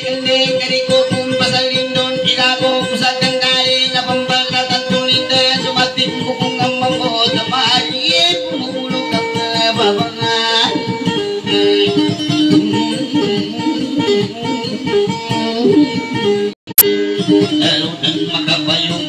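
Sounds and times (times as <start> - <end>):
plucked guitar melody: 0.0 - 19.0.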